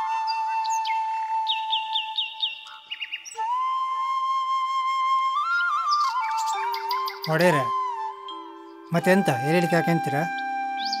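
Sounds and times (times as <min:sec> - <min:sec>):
flute-like film score: 0:00.0 - 0:11.0
high chirps: 0:05.5 - 0:11.0.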